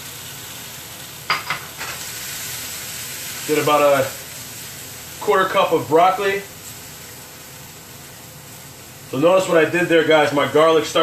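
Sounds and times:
vegetables sizzling in a pan: 0:00.0 - 0:11.0.

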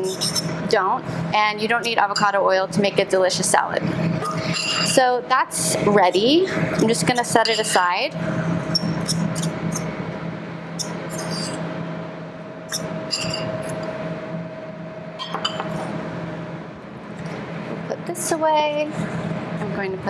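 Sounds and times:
spoon clinking and scraping bowl: 0:00.0 - 0:00.5, 0:04.2 - 0:05.0, 0:07.1 - 0:07.9, 0:10.8 - 0:11.6, 0:12.7 - 0:13.8
low hum of kitchen equipment: 0:00.0 - 0:20.0.

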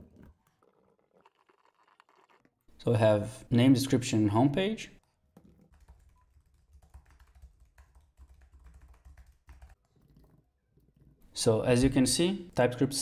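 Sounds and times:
typing on computer keyboard: 0:05.4 - 0:10.4.

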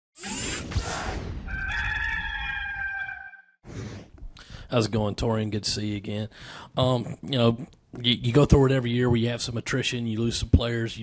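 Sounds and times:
rooster crowing: 0:01.5 - 0:03.6.

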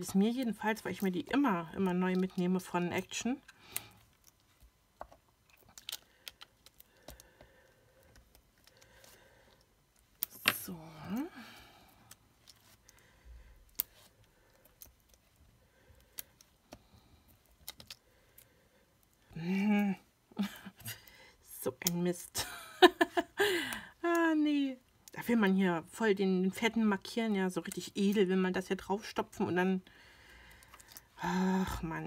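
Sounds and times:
person speaking: 0:31.2 - 0:32.0.

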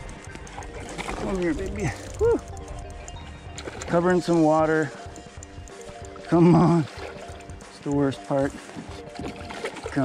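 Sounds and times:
fishing reel cranking: 0:00.0 - 0:08.6
background music: 0:00.0 - 0:10.0.

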